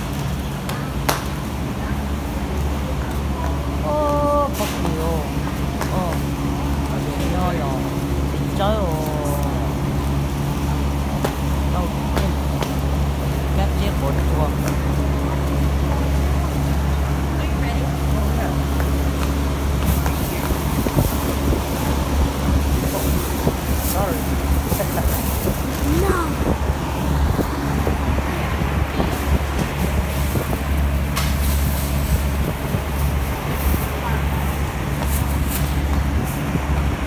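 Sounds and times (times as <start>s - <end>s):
steady low hum: 0.0s - 37.0s
voices talking: 0.0s - 37.0s
plastic bags rustling: 3.9s - 36.5s.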